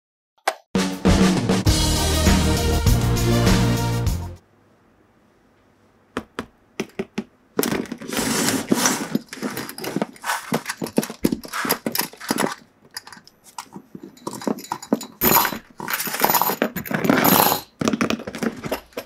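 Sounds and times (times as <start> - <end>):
chain clinking and rattling: 8.7 - 19.0.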